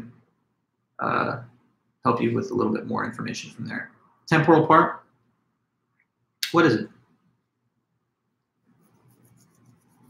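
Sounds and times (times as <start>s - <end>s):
fingers rubbing beard stubble: 8.8s - 10.0s.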